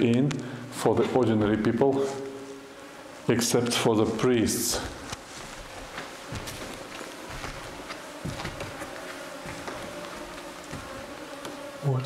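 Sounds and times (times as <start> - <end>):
mosquito whine: 2.1 - 12.0.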